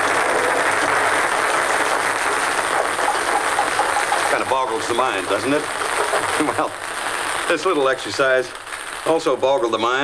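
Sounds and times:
ping-pong balls bouncing on table: 2.2s - 4.6s.

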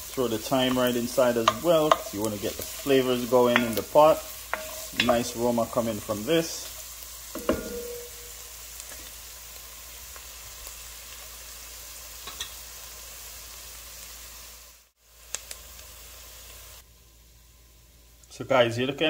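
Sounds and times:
vegetables sizzling in oil: 0.0s - 19.0s
wooden spoon stirring: 0.2s - 6.7s.

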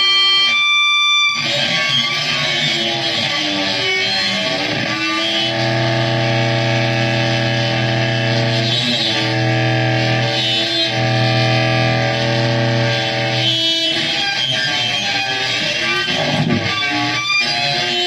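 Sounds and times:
distorted saxophone drone: 1.4s - 18.0s.

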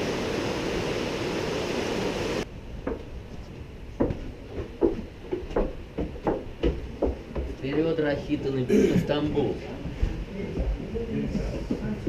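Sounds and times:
footsteps on wooden boards: 2.8s - 8.3s.

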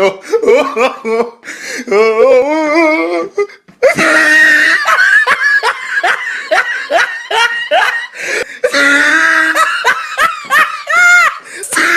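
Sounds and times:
loud laughter: 3.8s - 11.9s.

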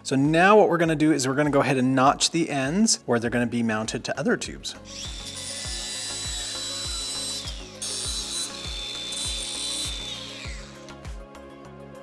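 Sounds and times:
background music with beat: 3.9s - 12.0s
angle grinder whining on steel: 4.8s - 11.2s.

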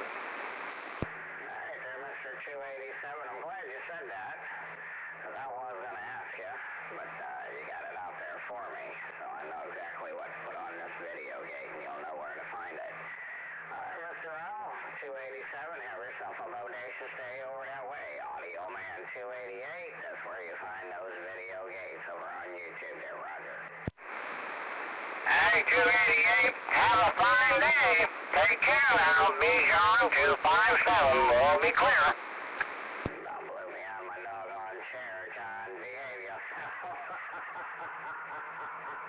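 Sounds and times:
radio click: 0.0s - 1.2s, 29.4s - 33.2s
radio hiss: 0.0s - 39.0s
voice over radio: 1.4s - 23.8s, 25.2s - 39.0s.

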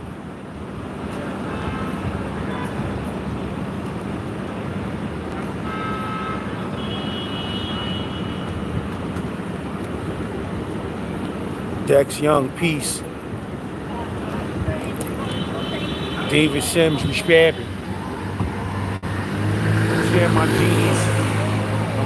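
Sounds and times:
traffic rumble: 0.0s - 22.0s.

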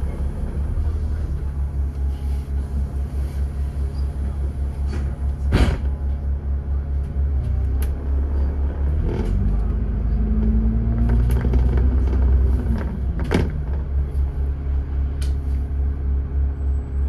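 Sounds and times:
bus diesel engine rumbling: 0.0s - 17.0s
bus knocks and rattles: 2.8s - 16.0s.

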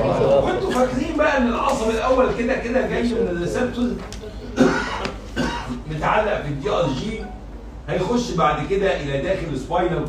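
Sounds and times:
person coughing: 4.4s - 5.8s.

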